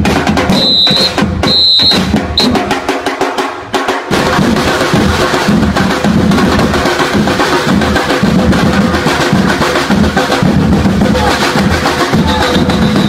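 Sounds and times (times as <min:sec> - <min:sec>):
dance drum beat with bass drum: 0:00.0 - 0:13.0.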